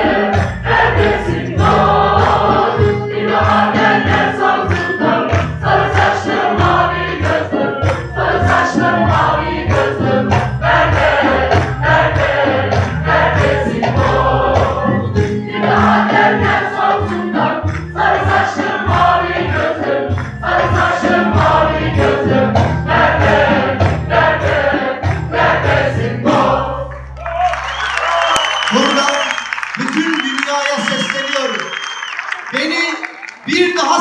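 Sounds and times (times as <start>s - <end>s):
women's choir singing: 0.0s - 26.9s
rhythmic accompaniment: 0.0s - 34.0s
man speaking over microphone: 28.7s - 31.7s, 32.5s - 34.0s.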